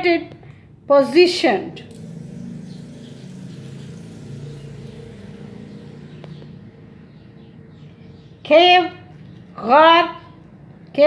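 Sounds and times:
low engine hum: 1.6 - 8.4.

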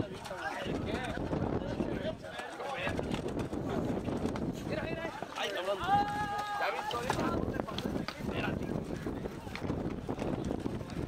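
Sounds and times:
wind on microphone: 0.0 - 5.2, 5.8 - 11.0.

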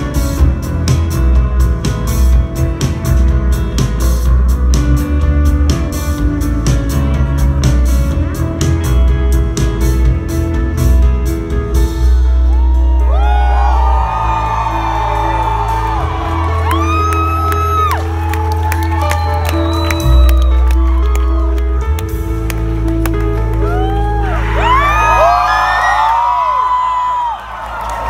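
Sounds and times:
rock band sustained chords: 0.0 - 26.0
audience whooping and cheering: 12.1 - 28.0.

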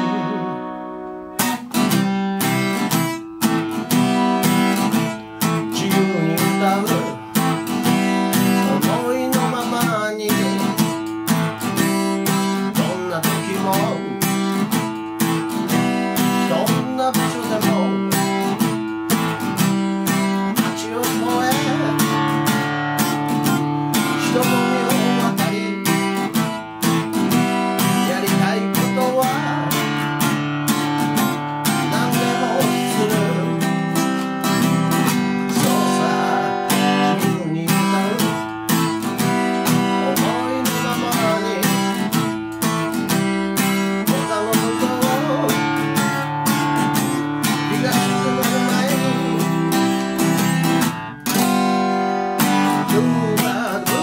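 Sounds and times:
acoustic guitar strumming chords: 0.0 - 54.0.

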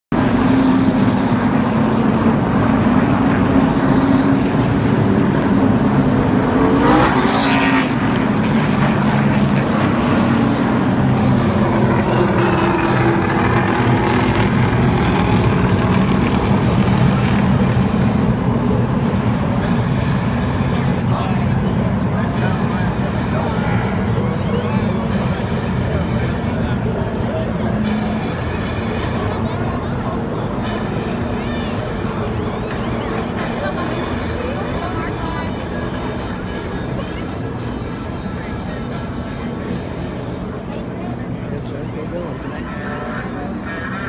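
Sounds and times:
race car engines droning: 0.1 - 44.0
race cars passing close by: 0.2 - 44.0.

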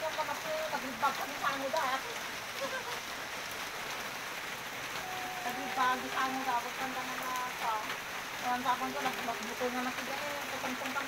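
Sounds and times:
rain falling steadily: 0.0 - 11.0.

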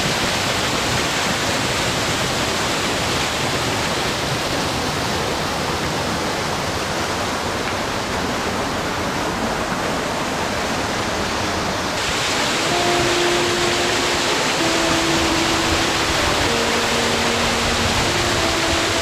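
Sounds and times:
waterfall pouring onto rock: 0.0 - 5.0, 12.0 - 19.0.

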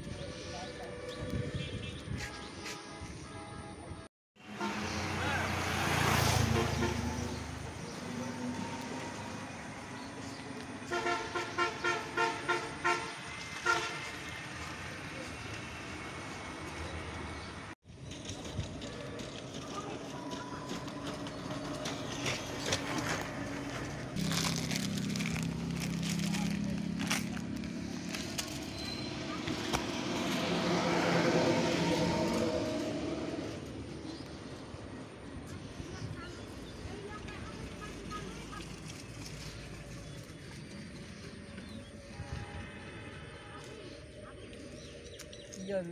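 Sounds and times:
roadside traffic noise: 0.0 - 45.9
motor vehicle passing by: 4.4 - 12.0, 13.2 - 45.9.

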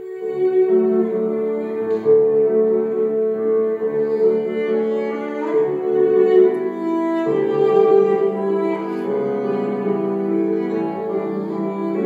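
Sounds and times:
cello playing: 0.0 - 12.0
piano chords: 0.0 - 12.0.

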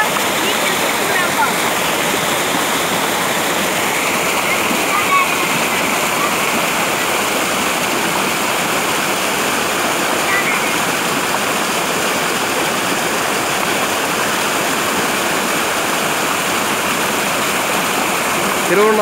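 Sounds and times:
waterfall rushing: 0.0 - 19.0.

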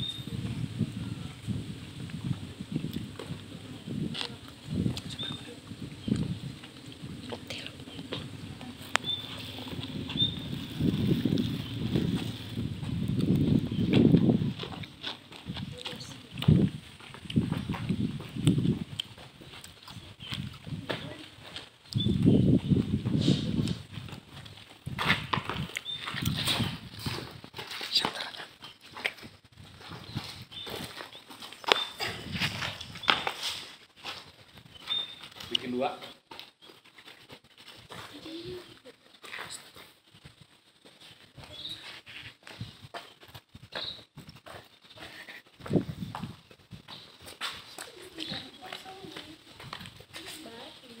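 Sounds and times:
students talking: 2.4 - 17.0, 47.7 - 51.0.

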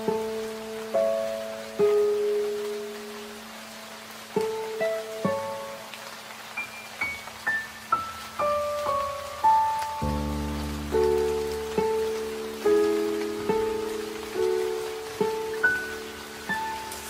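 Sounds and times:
slow piano music: 0.0 - 17.0
steady rain: 0.0 - 17.0.

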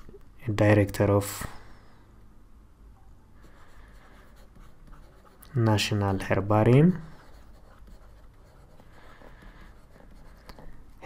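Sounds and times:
low steady hum: 0.0 - 11.0
stylus scratching on tablet: 3.4 - 11.0.

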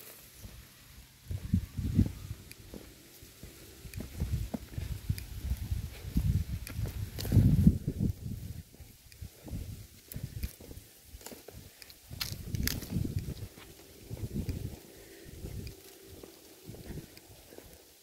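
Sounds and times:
footsteps on dry mud: 0.0 - 18.0
low microphone rumble: 1.2 - 10.8, 12.1 - 17.5.

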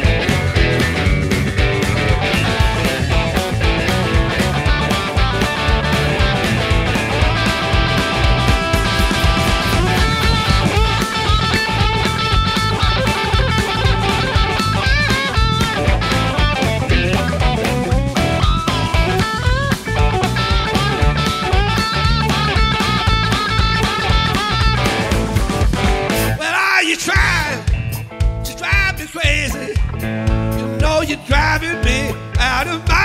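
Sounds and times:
electric bass: 0.0 - 26.4, 27.2 - 33.0
electric guitar lead: 0.0 - 26.4, 27.1 - 33.0
drums: 0.0 - 33.0.

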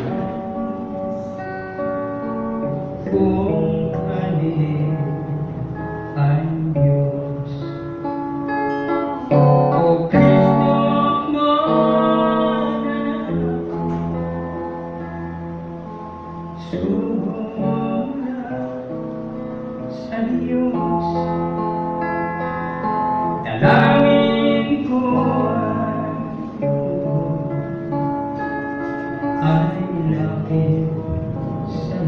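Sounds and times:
man singing into a microphone: 0.0 - 8.1, 9.3 - 14.2, 16.6 - 21.8, 23.4 - 28.1, 29.2 - 32.0
acoustic guitar: 0.0 - 32.0.

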